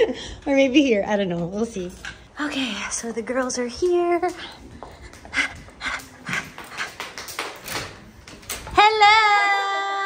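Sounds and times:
footsteps: 1.7 - 9.2.

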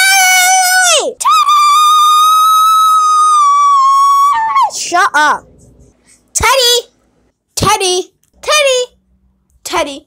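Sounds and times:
child screaming: 0.0 - 4.9.

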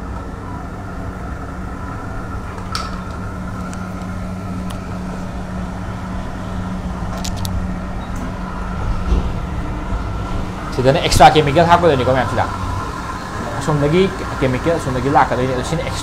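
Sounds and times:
low machine hum: 0.0 - 16.0.

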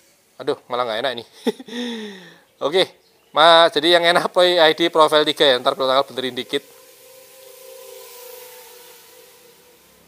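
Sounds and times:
quadcopter motors whining: 3.5 - 10.0.

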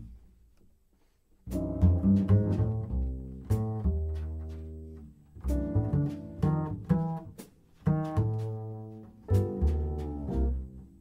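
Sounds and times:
jazz piano: 1.0 - 11.0
double bass notes: 1.3 - 11.0.

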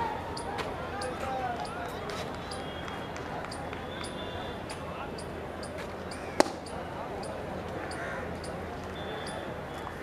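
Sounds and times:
outdoor background noise: 0.0 - 10.0
faint high ticks: 0.3 - 9.9.

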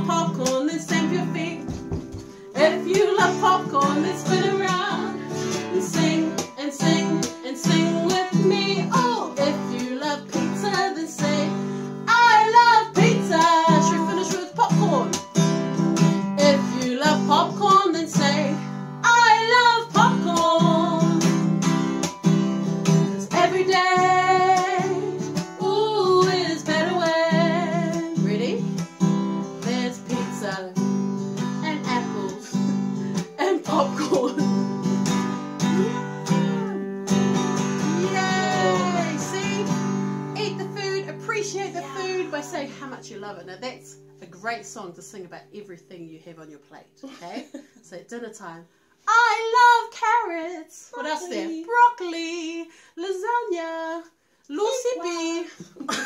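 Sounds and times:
women singing: 0.0 - 1.9, 2.5 - 15.2, 16.2 - 21.5, 22.9 - 28.8, 29.6 - 30.8, 31.6 - 34.5, 35.6 - 37.0, 37.7 - 43.0, 49.1 - 56.0
strummed acoustic guitar: 0.0 - 45.8, 51.0 - 52.0.

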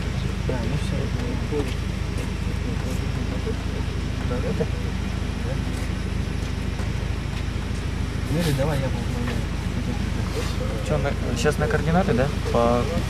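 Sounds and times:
low engine hum: 0.0 - 13.0.

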